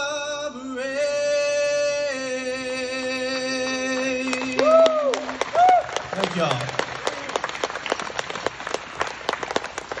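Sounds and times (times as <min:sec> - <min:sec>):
small audience applause: 0:04.0 - 0:10.0.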